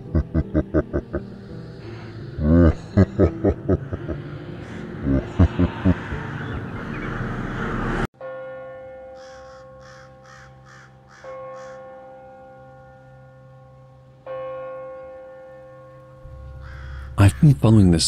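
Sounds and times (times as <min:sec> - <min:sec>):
crow cawing: 0:09.2 - 0:12.0, 0:16.5 - 0:17.2.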